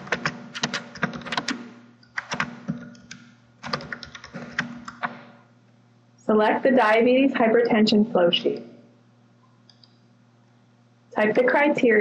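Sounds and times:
keyboard keystrokes: 0.0 - 5.2.

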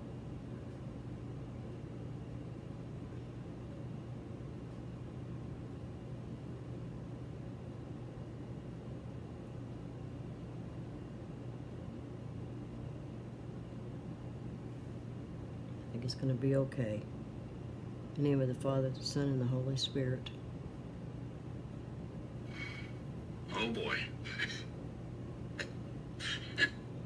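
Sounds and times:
low hum with faint hiss: 0.0 - 27.0.

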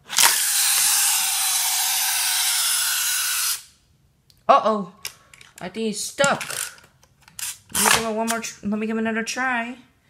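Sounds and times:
small motor whirring: 0.1 - 3.7.

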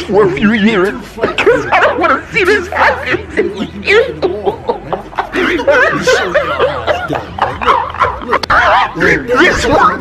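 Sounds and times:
man laughing high-pitched: 2.6 - 8.3.

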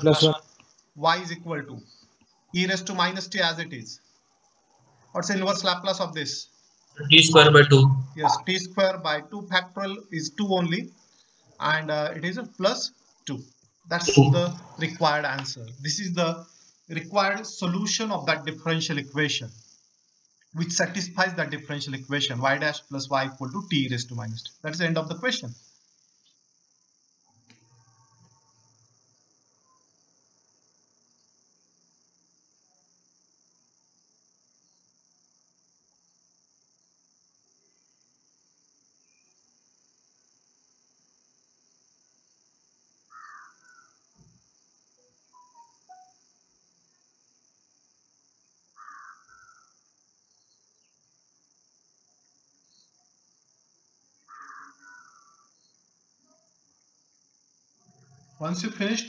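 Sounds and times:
faint high-pitched hiss: 0.0 - 59.0
faint chirp: 7.0 - 8.6, 12.7 - 15.8, 45.0 - 47.0.

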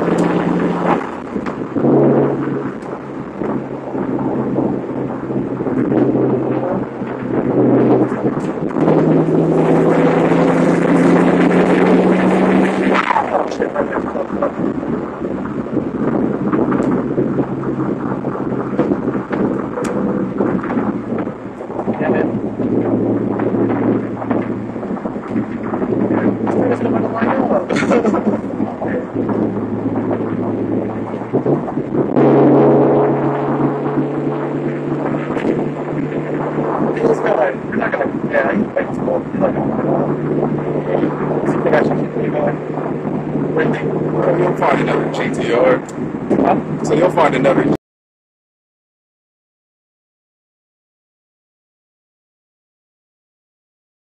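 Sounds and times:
car engine from inside cabin: 0.0 - 13.1, 15.0 - 27.2, 28.4 - 37.0.

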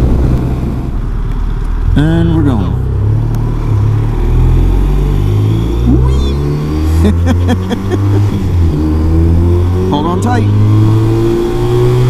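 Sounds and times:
motorcycle engine accelerating: 1.8 - 12.0.

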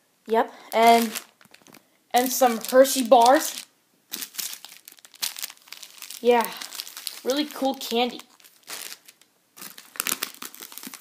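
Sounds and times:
candy wrapper crinkling: 0.7 - 11.0.

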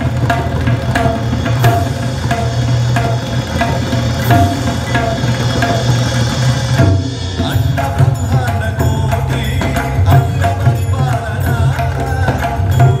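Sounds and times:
deep bass drum tones: 0.0 - 13.0
tabla ringing strokes: 0.0 - 13.0.

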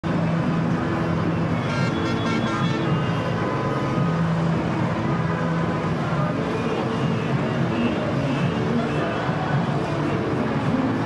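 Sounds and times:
car road noise: 0.0 - 11.0
music playing: 0.1 - 11.0.

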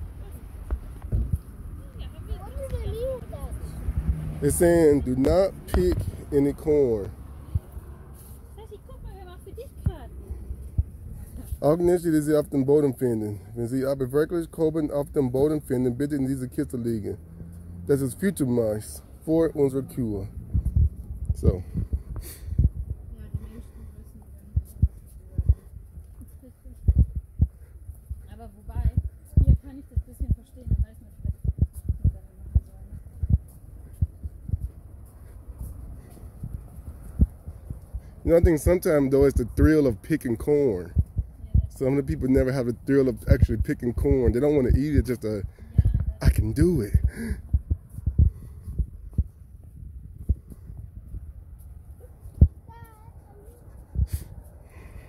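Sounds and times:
faint low rumble: 19.9 - 55.0
footsteps on dirt path: 21.9 - 38.2.

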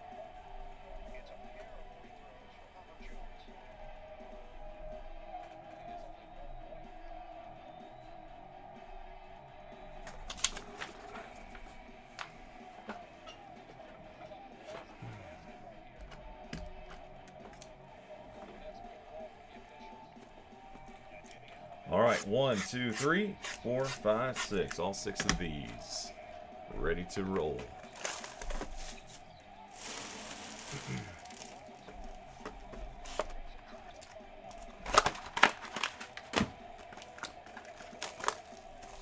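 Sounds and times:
faint background music: 0.0 - 39.0
indistinct voices: 5.8 - 39.0.

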